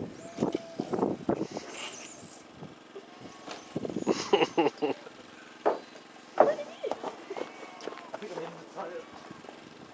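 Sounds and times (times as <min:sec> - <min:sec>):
short knocks: 0:05.6 - 0:07.1.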